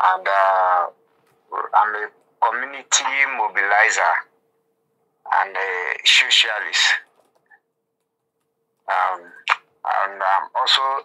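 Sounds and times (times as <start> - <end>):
man speaking over phone line: 0.0 - 4.3, 5.3 - 7.1, 8.9 - 11.0
faint steady hum: 0.0 - 11.0.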